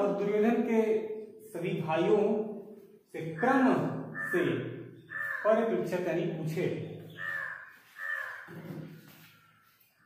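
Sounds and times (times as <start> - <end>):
bird harsh calls: 3.2 - 5.9, 6.5 - 10.0.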